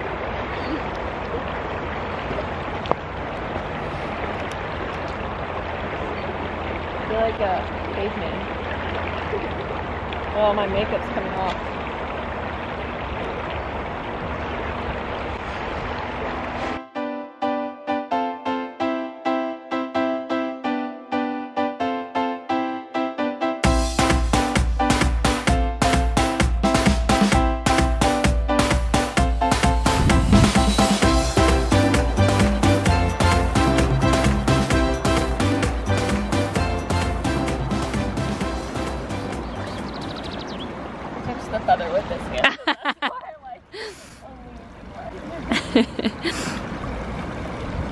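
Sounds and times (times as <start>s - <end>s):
lake water washing against rocks: 0.0s - 16.8s, 29.8s - 43.1s, 43.8s - 47.9s
piano music: 16.5s - 40.3s
water lapping on rocky shore: 37.9s - 47.9s.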